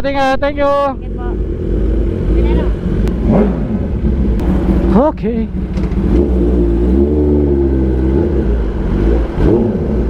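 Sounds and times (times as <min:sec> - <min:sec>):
motorcycle engine rev: 0:01.0 - 0:10.0
motorcycle engine riding off: 0:01.1 - 0:10.0.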